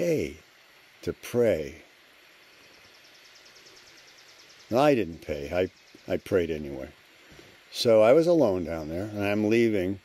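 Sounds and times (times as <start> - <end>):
insect trill: 0.0 - 10.0
quiet outdoor background noise: 0.0 - 10.0.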